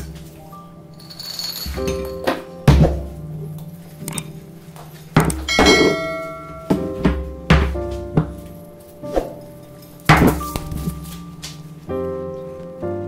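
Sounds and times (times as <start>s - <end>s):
background music with held notes: 0.0s - 13.0s.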